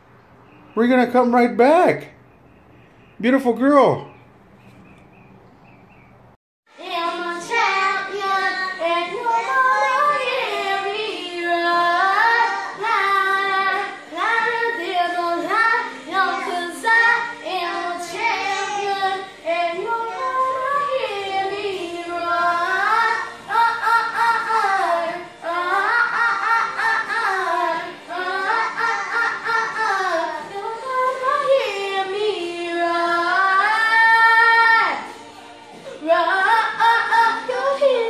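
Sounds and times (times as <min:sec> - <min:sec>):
child singing: 0:06.7 - 0:38.0.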